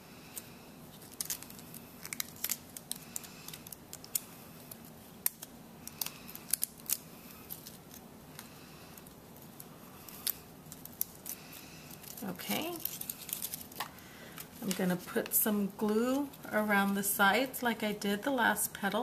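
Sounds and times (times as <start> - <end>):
light paper clicks and crackles: 0.3 - 14.9.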